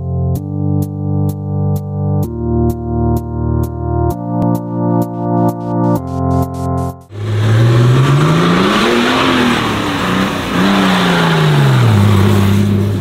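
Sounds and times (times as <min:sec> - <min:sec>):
buggy engine revving: 0:07.1 - 0:13.0.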